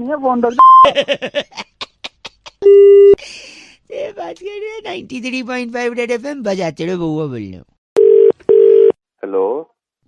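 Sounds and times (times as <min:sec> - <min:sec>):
telephone ringback tone: 0:08.0 - 0:08.9.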